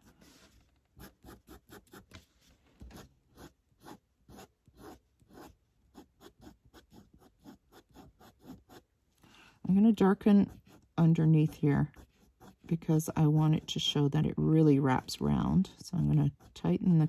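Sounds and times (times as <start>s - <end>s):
felt marker scratching on paper: 0.0s - 2.2s, 2.9s - 8.8s, 9.7s - 17.0s.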